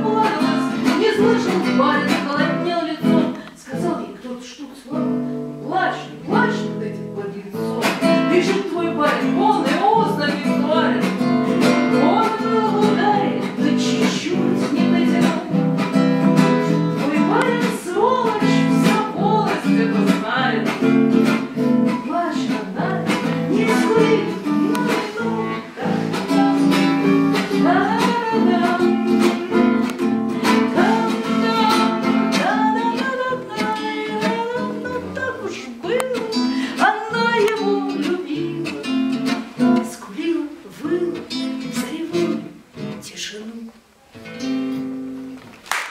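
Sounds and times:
acoustic guitar strumming: 0.0 - 4.1, 5.0 - 43.2, 44.1 - 45.5
person singing: 0.0 - 11.2, 11.9 - 15.7, 16.6 - 43.8.

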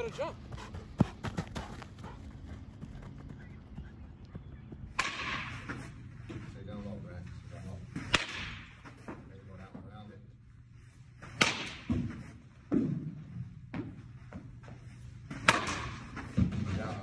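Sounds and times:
bat cracking on ball: 4.9 - 5.8, 8.0 - 8.8, 11.4 - 12.1, 15.3 - 16.1.

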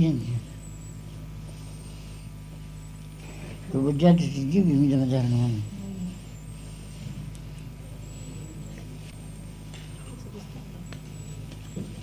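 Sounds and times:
tape hum and hiss: 0.0 - 12.0.

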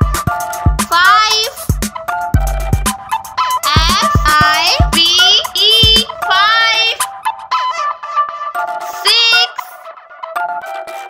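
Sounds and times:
child-like voice singing: 3.6 - 7.1, 8.9 - 9.8.

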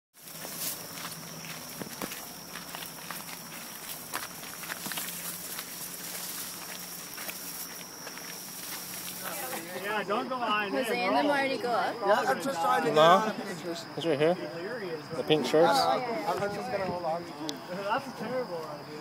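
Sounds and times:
footsteps on steel steps: 0.2 - 9.2.

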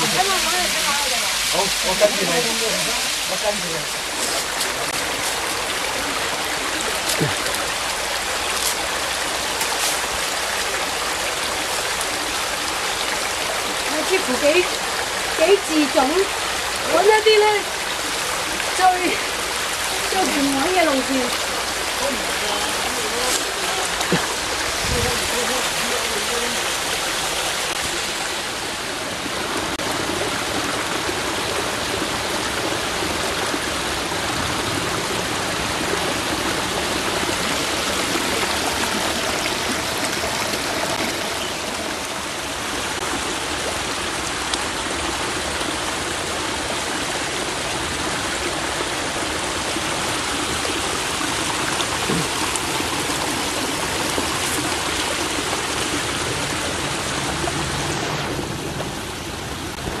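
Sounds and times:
stream rushing over rocks: 0.0 - 60.0.

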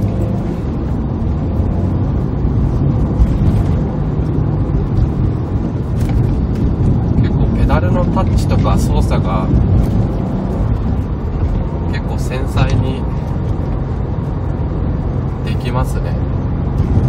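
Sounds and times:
car engine low rumble: 0.0 - 17.0
road noise: 0.0 - 17.0.

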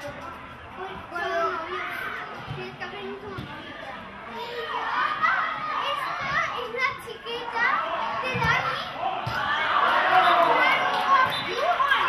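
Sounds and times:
children calling and shouting: 0.0 - 12.0.

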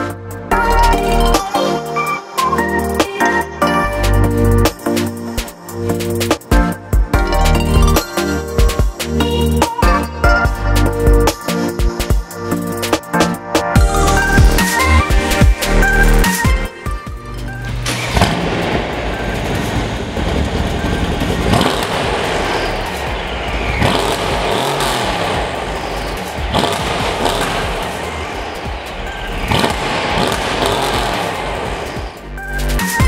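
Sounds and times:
car engine revving: 17.2 - 33.0.

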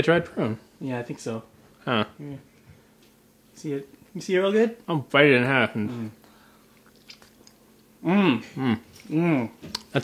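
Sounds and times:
small wet mouth clicks: 6.7 - 7.6
chewing soft dried fruit: 8.8 - 10.0.

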